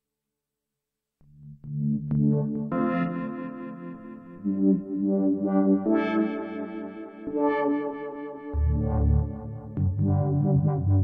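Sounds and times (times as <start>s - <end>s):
analog synthesizer notes: 4.4s - 11.0s.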